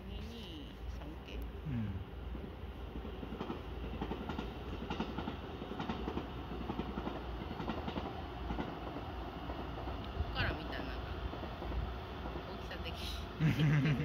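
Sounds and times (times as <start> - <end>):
train low rumble: 0.0 - 14.0
train wheels clattering over joints: 3.2 - 12.5.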